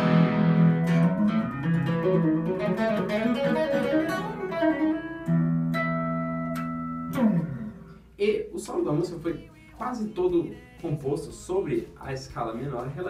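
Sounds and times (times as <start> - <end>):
electric guitar playing: 0.0 - 8.2.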